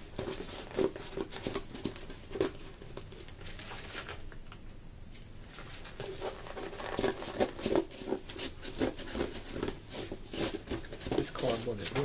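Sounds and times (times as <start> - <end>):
cardboard crackling and scraping: 0.0 - 4.3, 5.5 - 12.0.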